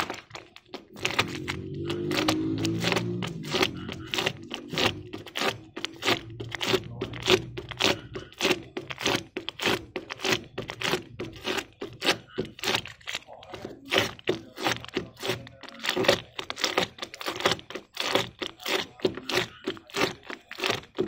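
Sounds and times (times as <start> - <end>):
scraping plastic headlamp lens: 0.0 - 21.0.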